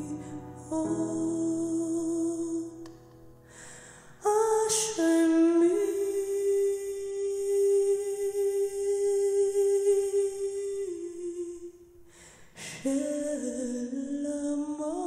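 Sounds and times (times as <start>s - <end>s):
woman singing: 0.0s - 2.8s, 4.2s - 11.8s, 12.6s - 15.0s.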